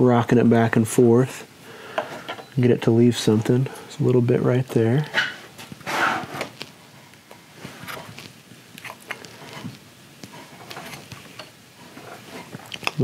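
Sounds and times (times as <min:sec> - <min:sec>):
chisel scraping wood: 0:08.8 - 0:12.6.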